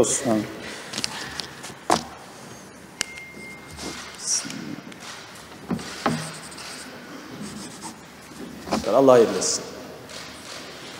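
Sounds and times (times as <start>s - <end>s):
pens scratching on paper: 5.8s - 9.1s, 10.1s - 10.9s.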